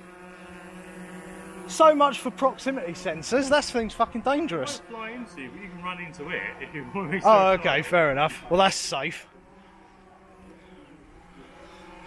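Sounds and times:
drone propellers humming: 0:00.0 - 0:12.0.

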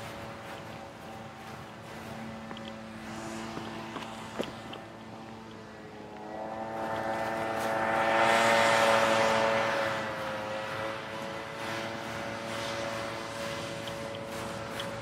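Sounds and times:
passing engine drone: 0:00.0 - 0:15.0
rushing noise: 0:00.0 - 0:15.0.

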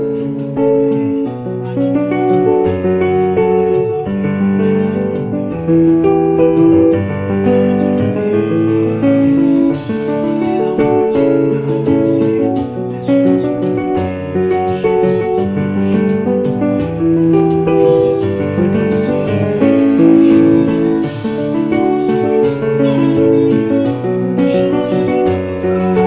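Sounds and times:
keyboard piano chords: 0:00.0 - 0:26.0.

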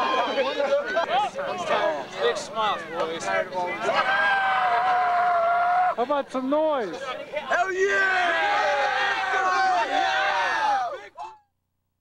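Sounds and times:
young men yelling and cheering: 0:00.0 - 0:11.4.

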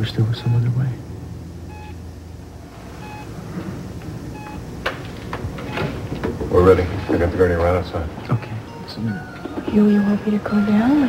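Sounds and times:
patient monitor beeps: 0:00.0 - 0:00.9, 0:01.7 - 0:02.0, 0:03.0 - 0:03.4, 0:04.3 - 0:04.7, 0:05.4 - 0:11.0
low steady hum: 0:00.0 - 0:11.0.

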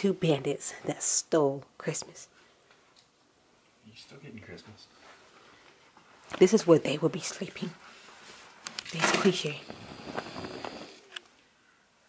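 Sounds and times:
rustling in suitcase: 0:08.2 - 0:11.0.

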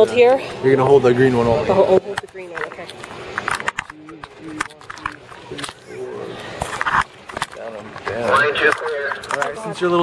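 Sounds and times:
indistinct voices talking: 0:01.3 - 0:10.0.

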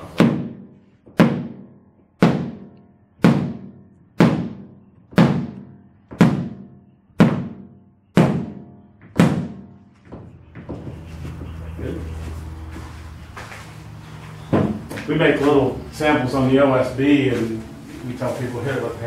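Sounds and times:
hammer striking wooden panel: 0:00.1 - 0:10.3.

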